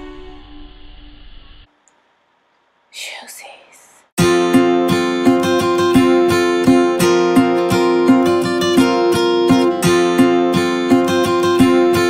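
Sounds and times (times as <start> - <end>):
person whispering: 2.9 - 4.1.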